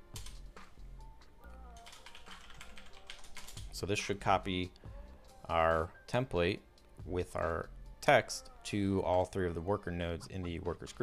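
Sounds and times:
soft background music: 0.0 - 11.0
computer keyboard typing: 0.1 - 0.4, 1.7 - 3.8.

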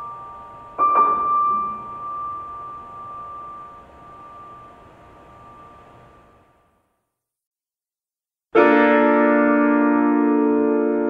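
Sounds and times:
piano chord ringing: 0.0 - 6.5, 8.6 - 11.0.

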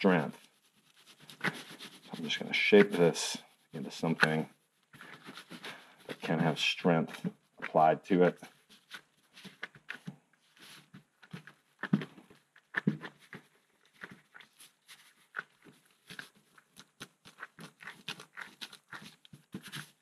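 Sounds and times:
wet mix squishing in gloved hands: 0.0 - 20.0.

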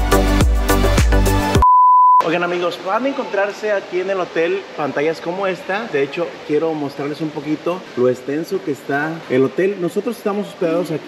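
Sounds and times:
steady electronic beep: 1.6 - 2.2
man speaking: 2.2 - 11.0.

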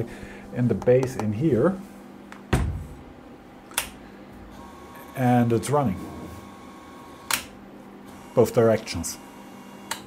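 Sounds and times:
grinder set down thump: 2.5 - 3.0
toggle switch click: 3.7 - 4.0.

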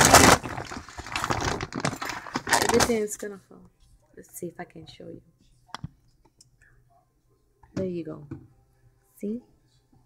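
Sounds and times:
plastic bag rustling: 0.0 - 3.2.

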